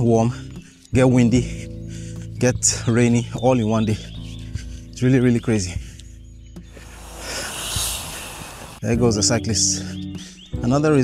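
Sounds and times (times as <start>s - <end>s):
soft background music: 0.0s - 11.0s
bicycle tyre noise: 6.8s - 8.8s.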